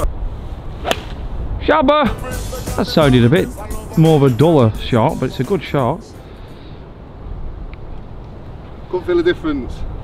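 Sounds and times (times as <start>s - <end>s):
man's voice: 1.6s - 6.2s.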